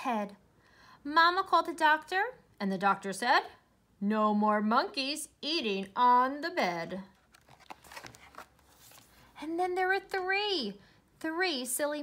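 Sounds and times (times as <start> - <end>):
book page being turned: 7.1 - 9.4.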